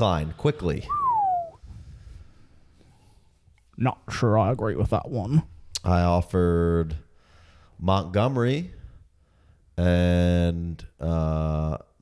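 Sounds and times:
whistled note sliding down: 0.8 - 1.6.

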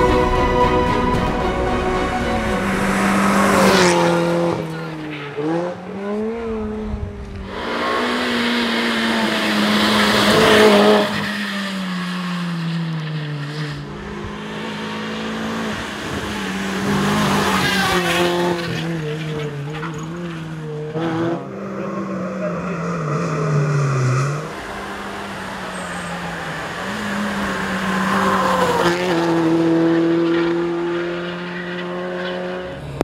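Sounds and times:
rally car engines revving: 2.0 - 33.0.

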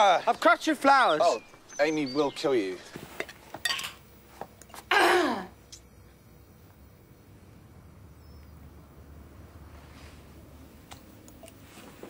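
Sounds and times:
glass jar clinking: 3.2 - 4.0.

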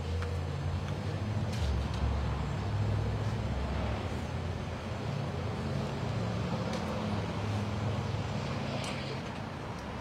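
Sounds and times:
passing traffic engine rumble: 0.0 - 10.0
street noise: 0.0 - 10.0.

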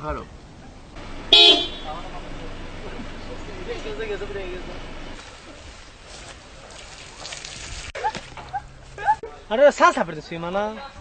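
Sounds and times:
horn toot: 1.3 - 2.1.

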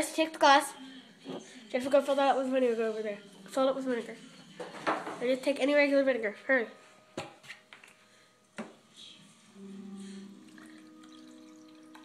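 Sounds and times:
liquid pouring into glass: 10.4 - 12.0.

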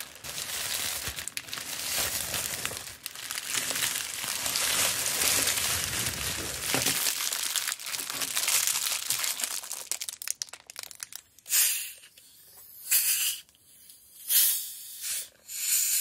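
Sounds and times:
plastic wrappers crinkling: 0.0 - 11.5.

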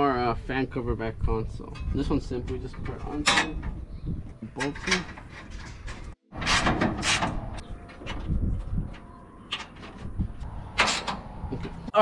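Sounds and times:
sheet metal scrapes and rattles: 4.6 - 8.6.

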